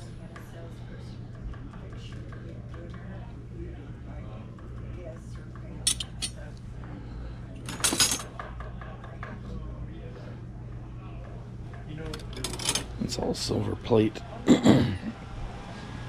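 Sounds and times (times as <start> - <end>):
spoons and forks clinking: 5.9 - 6.4.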